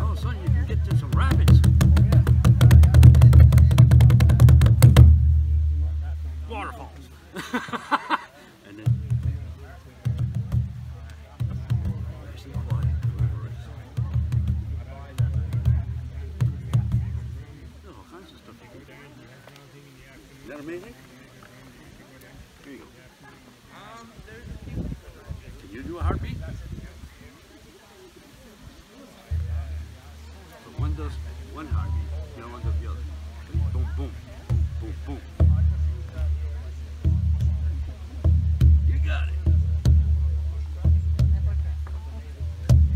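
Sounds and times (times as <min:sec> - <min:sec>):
large drum rolling rumble: 0:00.0 - 0:06.4
loud drum strikes: 0:00.0 - 0:06.6, 0:08.8 - 0:17.6, 0:30.8 - 0:42.9.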